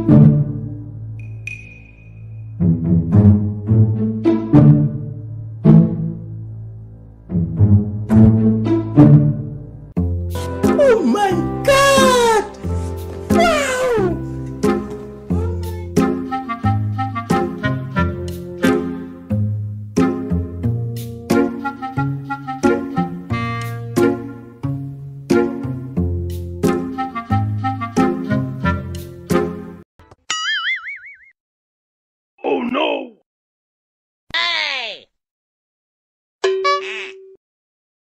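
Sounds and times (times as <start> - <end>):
background music: 0.0 - 29.8
cartoon boing sound effect: 30.3 - 31.4, 36.4 - 37.4.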